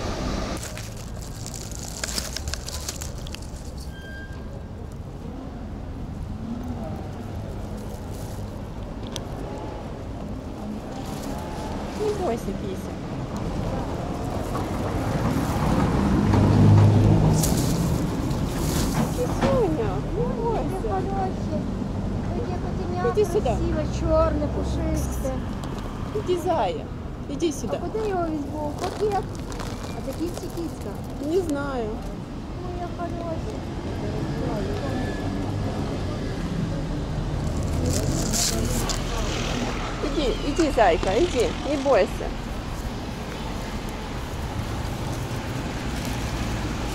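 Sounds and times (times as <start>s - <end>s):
vehicle engine hum passing: 6.3s - 26.4s, 33.0s - 46.9s.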